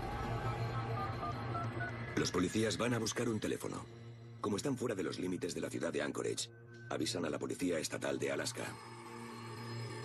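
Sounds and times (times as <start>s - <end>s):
low musical drone: 0.0s - 7.2s.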